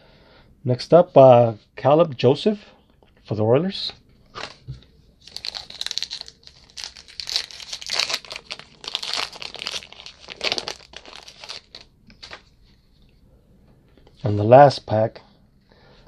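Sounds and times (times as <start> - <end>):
wrapper torn and crinkled: 5.2 - 12.4.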